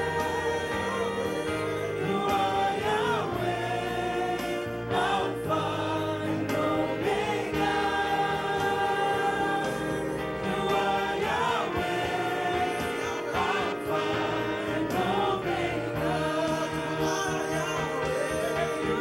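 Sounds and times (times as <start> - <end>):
gospel choir singing: 0.0 - 19.0.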